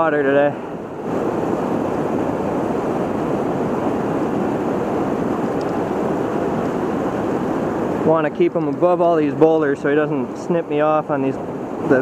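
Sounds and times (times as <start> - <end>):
river rushing into whitewater: 0.0 - 12.0.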